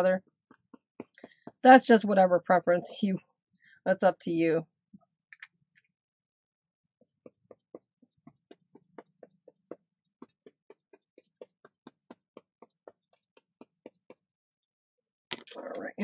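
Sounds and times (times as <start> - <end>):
paintbrush tapping on paper: 0.5 - 1.7, 7.1 - 14.2.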